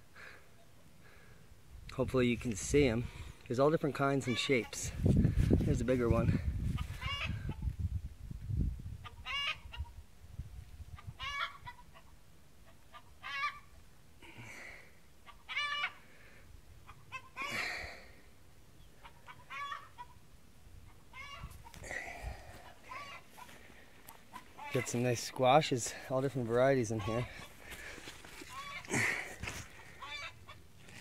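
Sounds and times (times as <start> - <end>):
chickens clucking: 6.7 - 7.7, 9.0 - 10.0, 10.9 - 13.7, 15.2 - 16.0, 16.8 - 17.6, 18.8 - 20.2, 20.8 - 25.5, 26.5 - 30.7.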